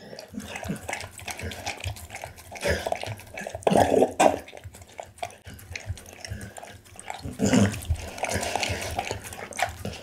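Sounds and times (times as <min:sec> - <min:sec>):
dog chewing and licking: 0:00.0 - 0:10.0.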